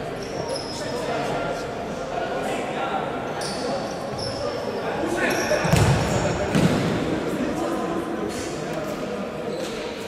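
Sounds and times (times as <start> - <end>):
voices of players and spectators: 0.0 - 10.0
shoes squeaking on court floor: 0.1 - 1.0, 3.3 - 6.7, 9.4 - 10.0.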